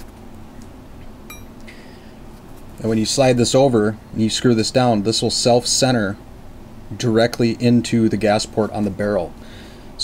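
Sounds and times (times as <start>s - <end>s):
metallic clink of steel parts: 1.3s - 1.6s
low hum: 1.3s - 1.8s.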